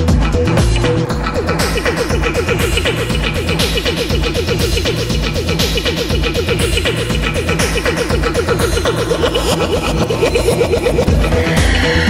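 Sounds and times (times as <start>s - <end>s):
electronic music with fast beat: 0.0s - 12.0s.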